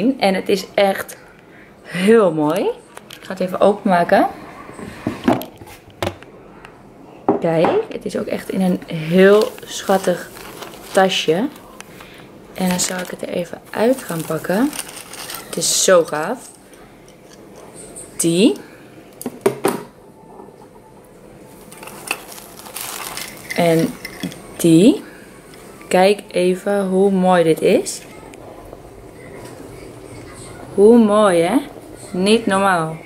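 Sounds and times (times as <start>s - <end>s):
foil tissue paper rustling: 8.3s - 16.7s, 21.5s - 24.2s.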